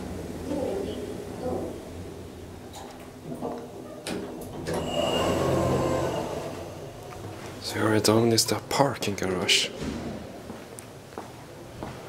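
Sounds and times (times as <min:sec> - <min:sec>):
elevator doors sliding open: 0:02.7 - 0:07.4
high motor whine: 0:04.6 - 0:07.4.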